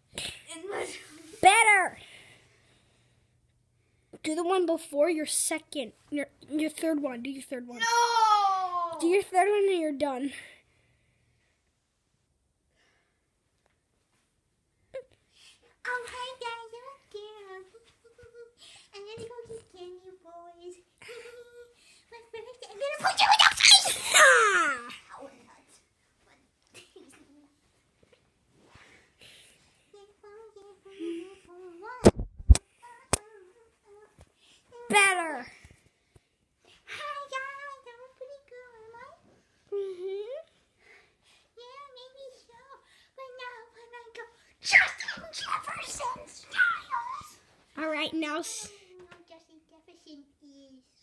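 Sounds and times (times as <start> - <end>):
boy making pitched vocal sounds: 23.5 - 25.0.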